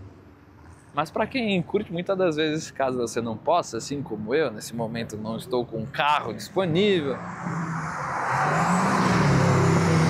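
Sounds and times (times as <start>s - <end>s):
race car engines: 3.1s - 10.0s
tyre and road noise: 6.4s - 10.0s.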